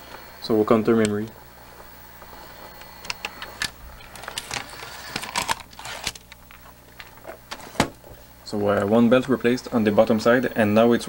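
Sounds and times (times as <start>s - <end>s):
steady low hum: 0.0s - 11.0s
vcr mechanical clicks: 0.8s - 1.4s, 2.7s - 8.0s.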